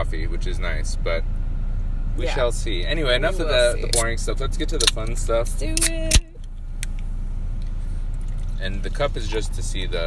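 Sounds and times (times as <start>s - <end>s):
low hum in car cabin: 0.0s - 10.0s
sharp click: 4.8s - 5.2s, 5.8s - 7.0s.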